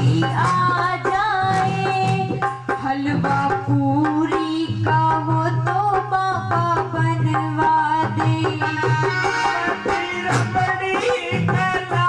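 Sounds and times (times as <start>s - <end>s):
hand drum beats: 0.0s - 12.0s
woman singing into a microphone: 0.0s - 12.0s.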